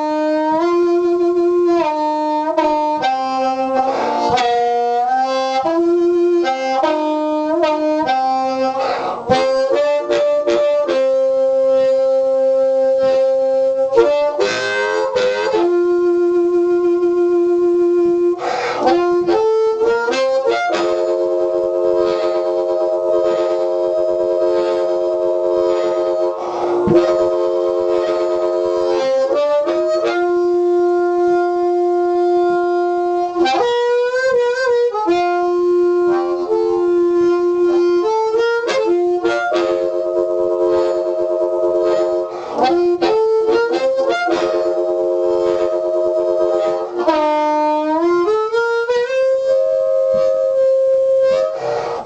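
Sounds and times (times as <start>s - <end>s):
amplified blues harmonica chord: 0.0s - 52.0s.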